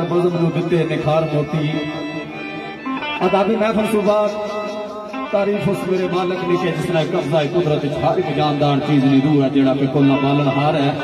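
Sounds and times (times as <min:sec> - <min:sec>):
plucked string instrument melody: 0:00.0 - 0:11.0.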